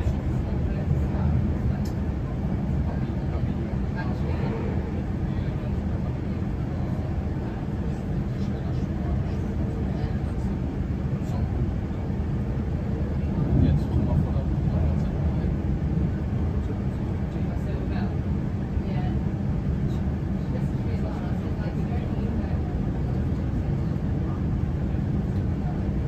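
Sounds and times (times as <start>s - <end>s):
electric train rumbling: 0.0s - 26.0s.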